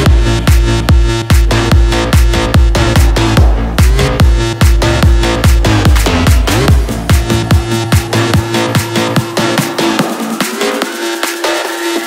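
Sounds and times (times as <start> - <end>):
percussion hits: 0.0 - 12.0.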